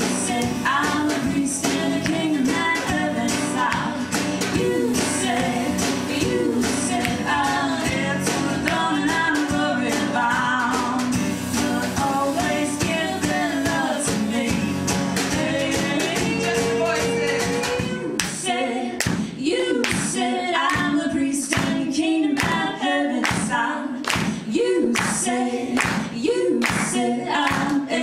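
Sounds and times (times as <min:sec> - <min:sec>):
strummed acoustic guitar: 0:00.0 - 0:18.1
drums keeping a steady beat: 0:00.0 - 0:27.8
woman singing: 0:00.0 - 0:28.0.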